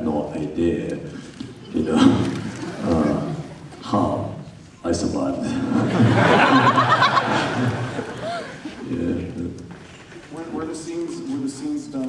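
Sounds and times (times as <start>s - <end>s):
crowd laughing: 1.8s - 3.8s, 5.4s - 9.2s
man laughing into microphone: 5.7s - 8.8s.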